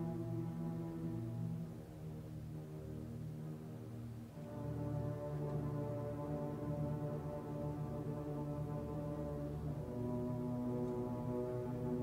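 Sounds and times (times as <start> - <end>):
string orchestra sustained chords: 0.0 - 12.0.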